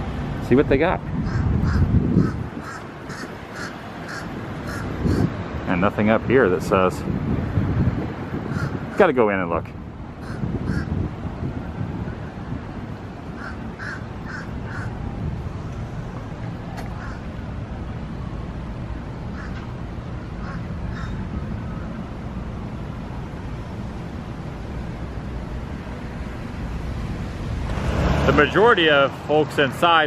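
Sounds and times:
low outdoor rumble: 0.0 - 30.0
crows cawing: 1.2 - 5.3, 8.5 - 8.8, 10.2 - 11.0, 13.4 - 15.0, 17.0 - 17.3, 19.3 - 19.6, 20.4 - 21.2.

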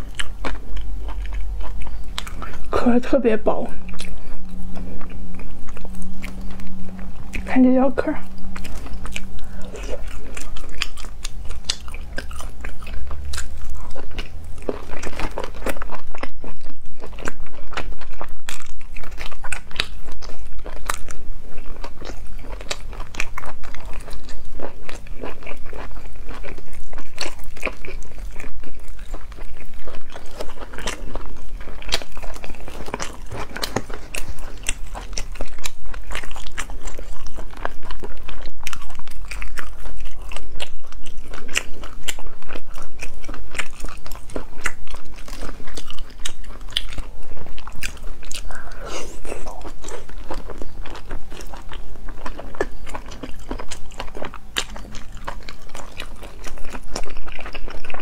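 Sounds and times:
person chewing with crunches: 0.0 - 58.0.

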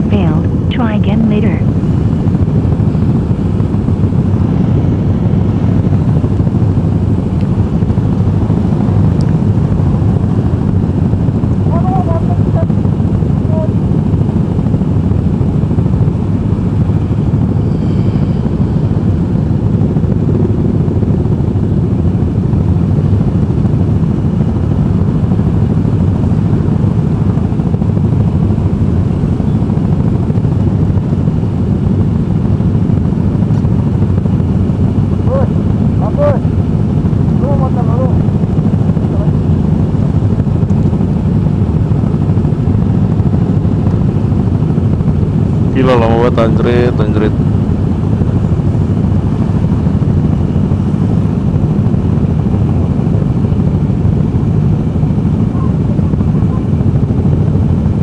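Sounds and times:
faint short rising tones: 17.5 - 18.8.

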